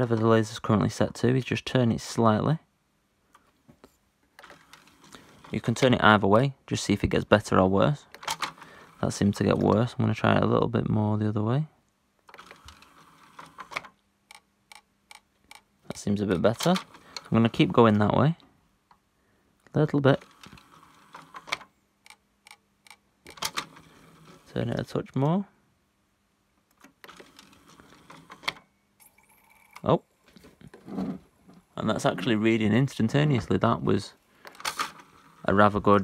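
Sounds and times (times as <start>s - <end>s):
disc tray mechanical rattle: 34.4s - 36.0s.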